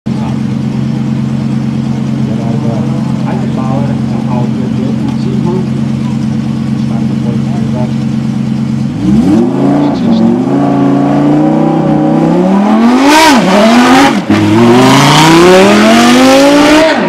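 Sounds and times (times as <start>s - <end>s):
race car engine idling: 0.1s - 12.5s.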